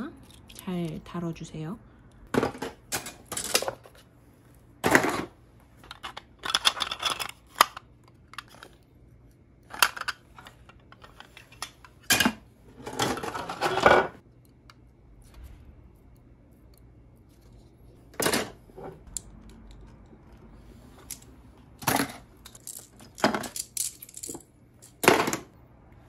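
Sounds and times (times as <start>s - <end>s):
plastic parts clicking and clattering: 2.3s - 4.0s, 4.8s - 8.8s, 9.6s - 14.2s, 21.0s - 25.5s.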